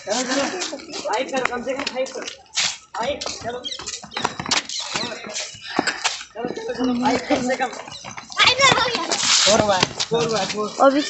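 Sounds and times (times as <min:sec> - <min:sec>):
footsteps on concrete steps: 0:00.0 - 0:11.0
people talking and calling out: 0:00.0 - 0:11.0.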